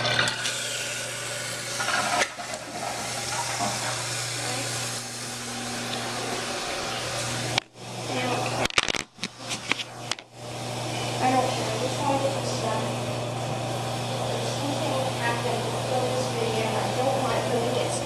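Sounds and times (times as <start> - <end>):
toilet tank refilling: 0.0 - 8.6.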